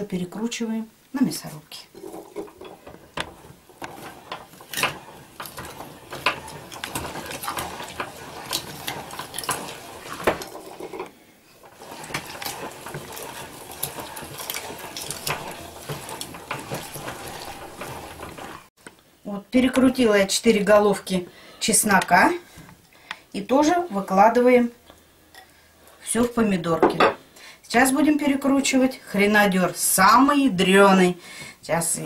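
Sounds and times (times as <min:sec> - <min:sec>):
meat grinder clicking and crunching: 0:02.8 - 0:10.9, 0:11.6 - 0:18.7.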